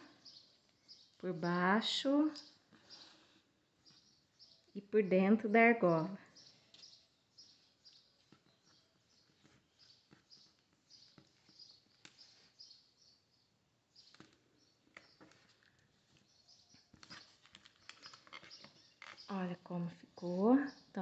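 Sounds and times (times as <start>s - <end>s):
cord clicks and rustles: 14.0s - 19.3s.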